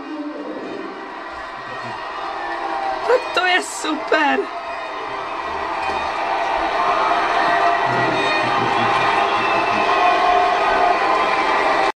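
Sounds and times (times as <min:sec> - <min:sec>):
crowd cheering and clapping: 0:00.0 - 0:12.0
music playing: 0:04.9 - 0:11.5.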